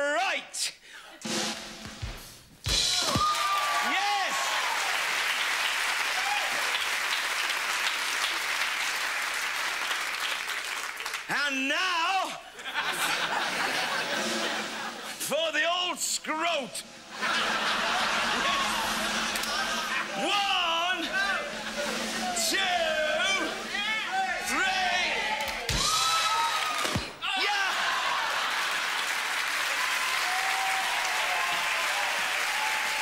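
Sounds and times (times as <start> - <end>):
cymbal crash: 1.2 - 3.2, 16.8 - 24.2
bass drum and snare hits: 1.2 - 3.4
applause: 3.2 - 11.4, 26.3 - 27.0, 27.6 - 33.0
studio audience laughing: 12.5 - 15.2, 17.0 - 20.3, 21.0 - 22.4, 27.8 - 29.3.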